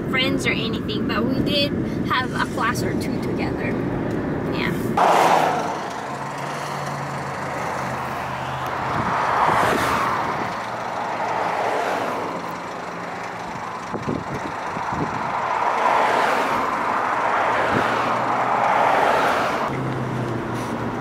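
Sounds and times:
low engine hum: 0.0 - 21.0
passing traffic: 0.0 - 21.0
wind and road noise: 0.0 - 21.0.

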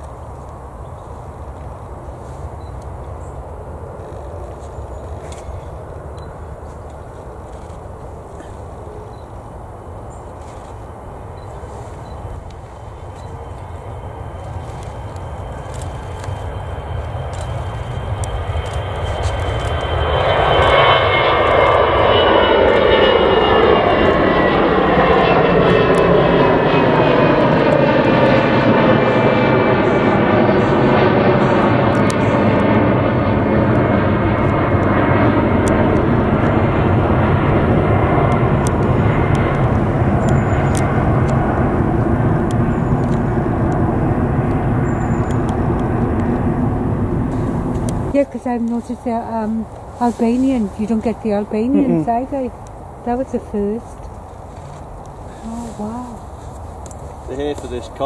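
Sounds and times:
jet engine roar: 0.0 - 58.0
whining engine tones: 10.6 - 53.9, 55.3 - 56.3.

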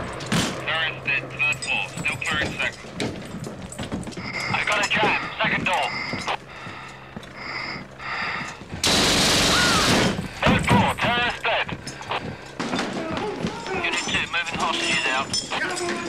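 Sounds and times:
muffled indistinct voices: 0.6 - 3.0, 4.2 - 7.0, 10.2 - 16.0
automatic gunfire burst: 8.8 - 10.3.

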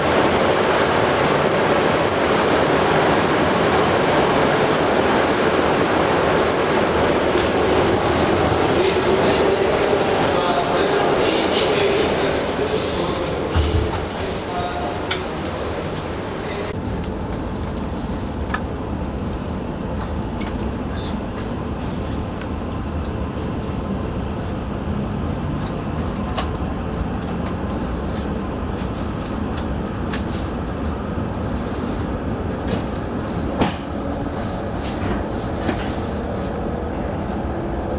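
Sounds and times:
train rushing noise: 0.0 - 37.9.

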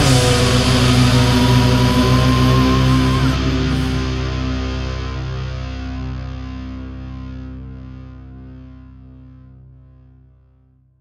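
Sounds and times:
progressive metal instrumental: 0.0 - 7.0.

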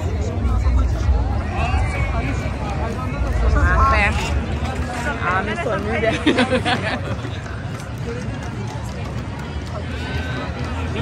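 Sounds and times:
crowd talking at a distance: 0.0 - 11.0
steady low rumble: 0.0 - 11.0.

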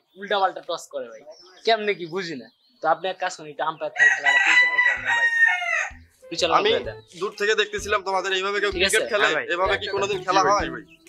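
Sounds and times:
rooster crowing: 4.0 - 6.0.

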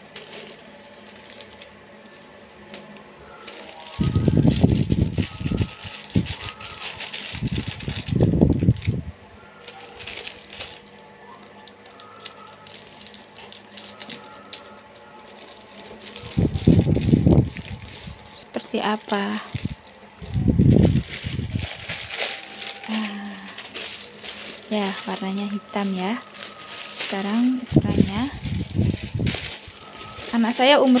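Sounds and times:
plastic bag rustling and crinkling: 0.0 - 31.0.

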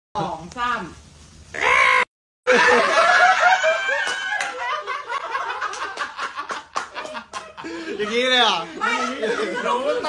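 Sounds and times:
men laughing: 2.5 - 10.0.

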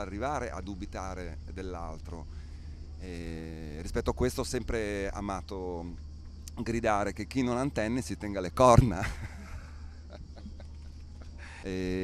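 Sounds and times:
low electrical hum: 0.0 - 12.0
man laughing softly: 8.9 - 11.7.

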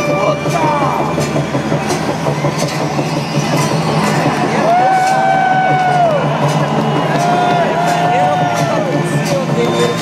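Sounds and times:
crowd whistling: 0.0 - 10.0
scattered claps: 0.0 - 10.0.

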